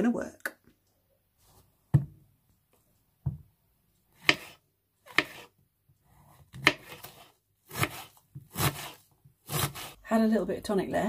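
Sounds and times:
knife chopping on wooden board: 4.2s - 5.5s, 6.1s - 10.0s.

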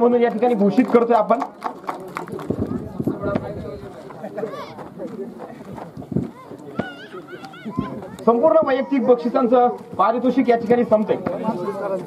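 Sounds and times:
men talking in background: 0.0s - 12.0s.

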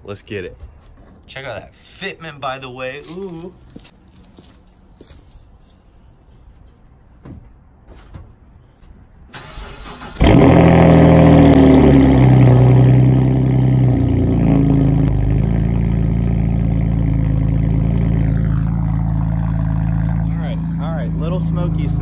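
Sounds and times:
car engine cranking: 9.3s - 13.1s
car engine revving and idling: 10.0s - 22.0s.

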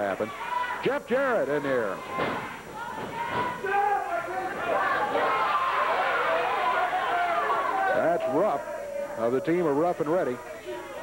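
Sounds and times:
voices: 0.0s - 11.0s.

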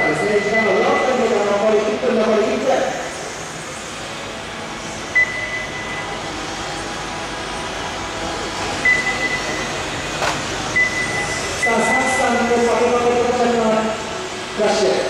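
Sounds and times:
high-pitched electronic beeps: 0.0s - 1.7s, 5.1s - 6.2s, 8.8s - 9.8s, 10.8s - 12.6s.

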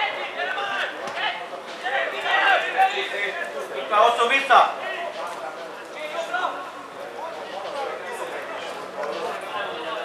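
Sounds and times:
open-air background noise: 0.0s - 10.0s
people calling and shouting: 0.0s - 10.0s.

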